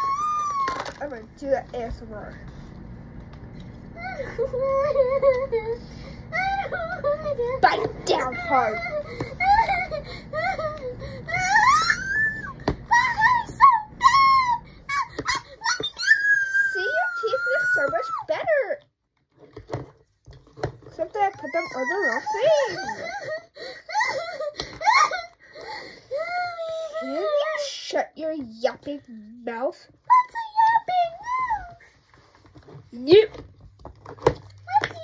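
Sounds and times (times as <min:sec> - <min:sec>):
child whimpering and wailing: 0:00.0 - 0:00.9, 0:03.9 - 0:18.3, 0:21.2 - 0:27.9, 0:30.1 - 0:32.0.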